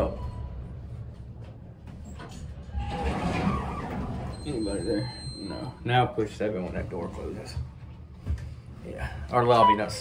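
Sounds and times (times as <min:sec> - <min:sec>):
elevator car arriving: 0:01.9 - 0:05.9
elevator doors sliding open: 0:02.0 - 0:05.6.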